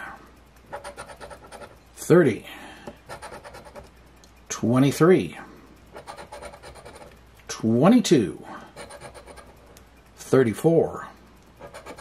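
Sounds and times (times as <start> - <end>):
coin scratching lottery ticket: 0.7 - 1.8, 3.1 - 3.9, 5.9 - 7.1, 8.7 - 9.8, 11.6 - 12.0.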